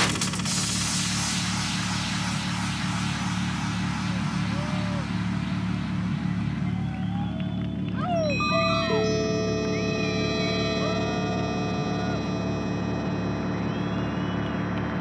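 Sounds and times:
bass pulse: 0.0 - 15.0
hiss wash: 0.2 - 5.3
held synth tones: 8.1 - 14.3.

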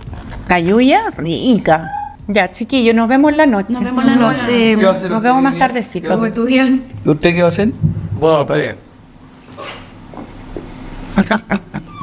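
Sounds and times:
pet whining: 1.7 - 2.3, 11.8 - 12.0.

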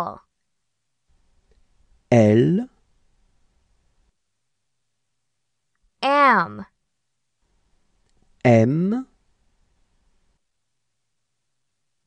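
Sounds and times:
voice saying a letter: 0.0 - 0.3, 2.1 - 2.8, 6.0 - 6.8, 8.4 - 9.1
faint low room noise: 0.0 - 12.0.

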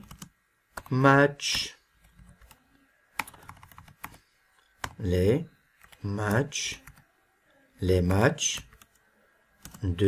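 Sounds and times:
computer keyboard keys clicking: 0.0 - 0.9, 2.2 - 5.0.

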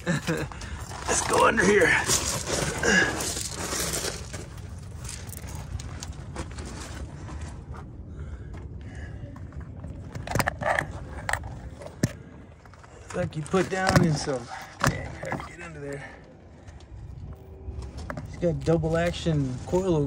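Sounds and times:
gravel crunching and scraping: 0.0 - 20.0.

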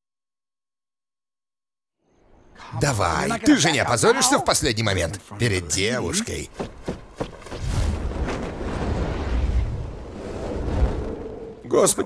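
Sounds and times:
footsteps on wooden ramp: 6.5 - 8.5
low rush of wind: 7.6 - 12.0.

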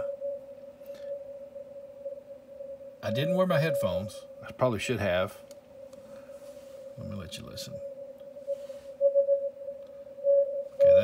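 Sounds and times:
faint radio hiss: 0.0 - 11.0
steady thin radio tone: 0.0 - 11.0.

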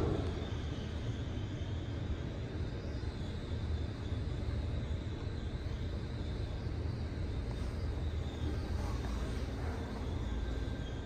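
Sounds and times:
elevator low rumble: 0.0 - 11.0
faint high whine: 0.0 - 11.0.

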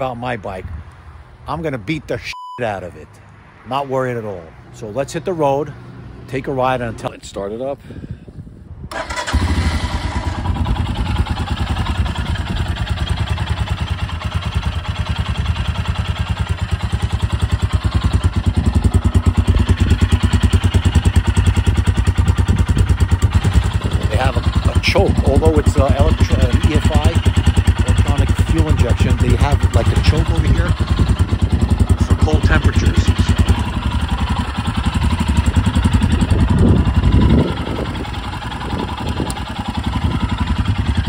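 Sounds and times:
motorcycle engine starting and idling: 8.9 - 41.0.

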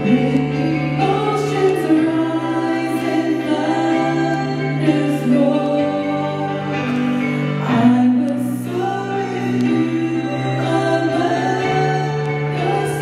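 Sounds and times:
sustained keyboard chords: 0.0 - 13.0.

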